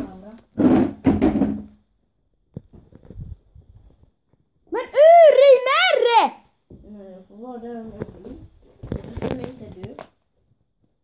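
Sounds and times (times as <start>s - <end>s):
child's voice bursts: 4.8s - 6.4s.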